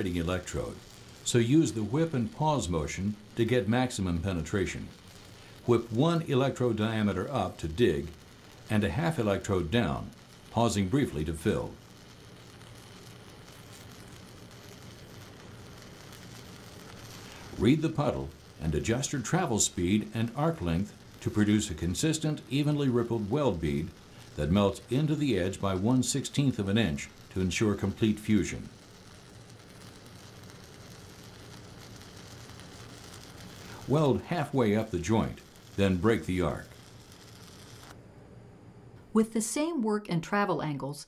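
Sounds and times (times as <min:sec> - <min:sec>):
welding arc crackling hiss: 0:00.0 - 0:38.0.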